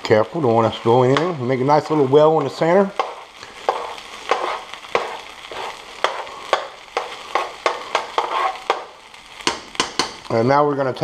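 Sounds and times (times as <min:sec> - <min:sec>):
rice frying in pan: 0:00.0 - 0:11.0
metal spoon scraping frying pan: 0:01.1 - 0:09.0.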